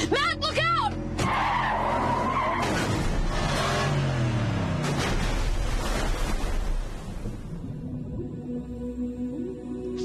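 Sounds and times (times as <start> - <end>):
car tyres squealing: 1.2 - 3.6.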